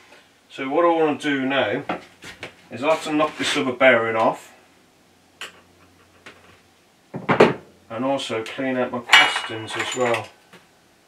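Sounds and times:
metal part clattering on workbench: 9.1s - 10.3s.

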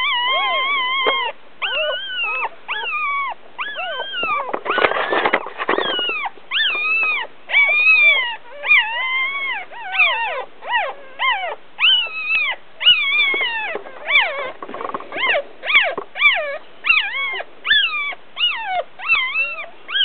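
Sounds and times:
puppies crying: 0.0s - 20.0s.

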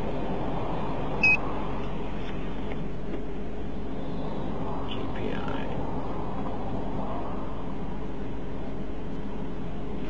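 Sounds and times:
rushing hum inside car: 0.0s - 10.0s.

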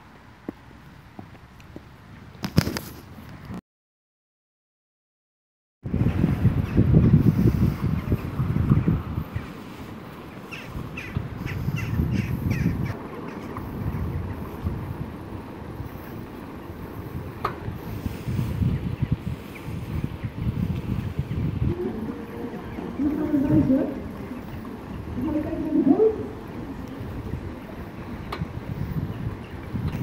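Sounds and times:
wind buffeting microphone: 5.8s - 30.0s
bird calls: 7.6s - 14.6s, 17.9s - 30.0s.

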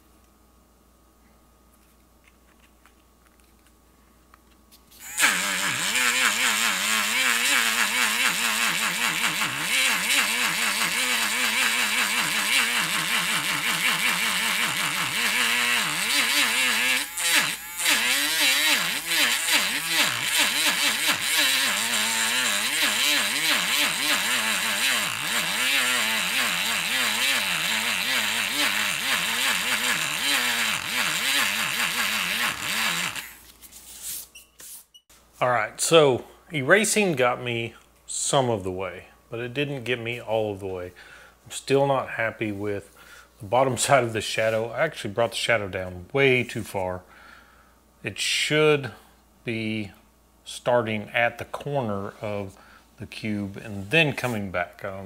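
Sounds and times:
electric eraser motor whining: 5.0s - 33.4s.

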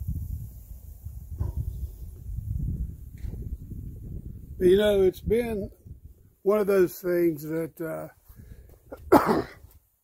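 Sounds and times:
wind buffeting microphone: 0.0s - 6.5s, 8.3s - 9.3s.

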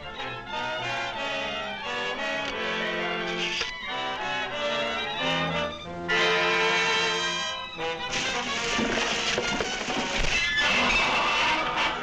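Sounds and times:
orchestral music with brass chords: 0.0s - 12.0s.

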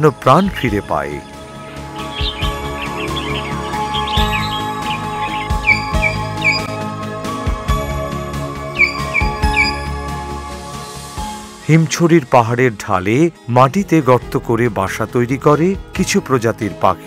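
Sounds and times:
background music: 0.0s - 17.0s
myna chirps and whistles: 1.9s - 6.8s, 8.7s - 10.0s.

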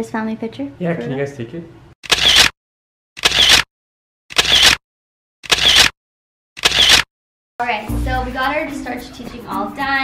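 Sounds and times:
camera shutter clicks: 2.0s - 2.5s, 3.2s - 3.7s, 4.3s - 4.8s, 5.4s - 5.9s, 6.6s - 7.1s.

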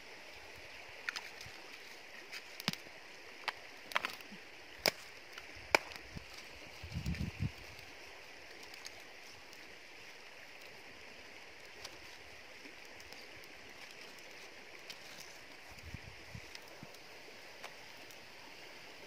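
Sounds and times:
stream rushing: 0.0s - 19.0s.

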